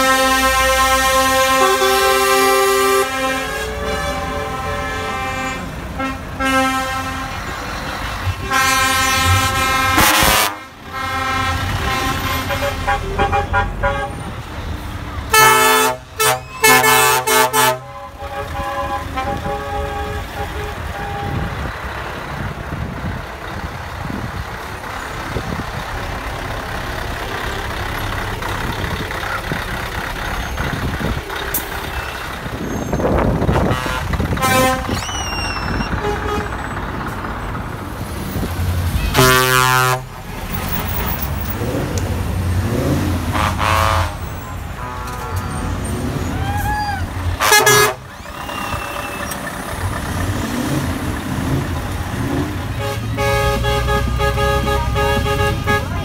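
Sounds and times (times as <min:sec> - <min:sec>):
truck air horns: 0:00.0 - 0:22.3, 0:24.0 - 0:42.0, 0:42.6 - 0:56.0
diesel trucks passing: 0:00.0 - 0:56.0.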